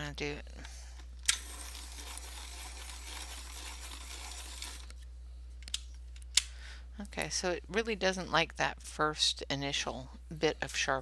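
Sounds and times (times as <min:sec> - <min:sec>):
pencil sharpener grinding: 0:01.3 - 0:05.0.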